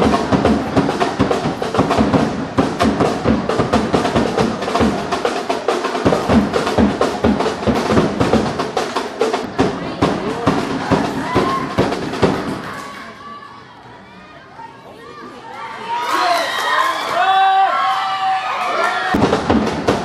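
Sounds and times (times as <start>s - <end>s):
fast drumming bass and snare: 0.0s - 12.7s, 19.1s - 20.0s.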